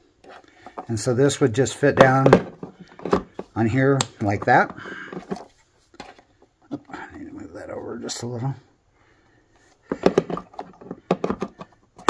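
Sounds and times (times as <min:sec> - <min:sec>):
plastic knocks and clicks: 0:09.9 - 0:11.8.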